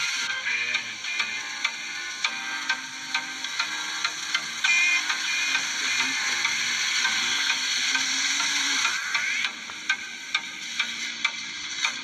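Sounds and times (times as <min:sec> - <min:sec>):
music with ticking beat: 0:00.0 - 0:12.0
steady hiss: 0:00.0 - 0:12.0.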